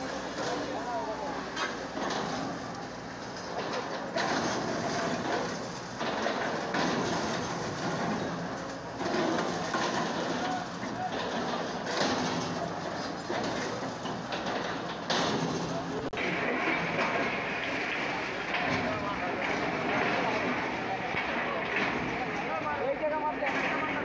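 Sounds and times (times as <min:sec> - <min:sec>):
excavator engines running: 0:00.0 - 0:24.0
falling debris: 0:00.0 - 0:24.0.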